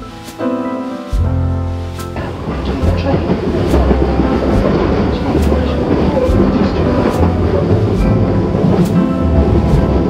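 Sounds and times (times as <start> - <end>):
train rumbling: 1.1 - 10.0.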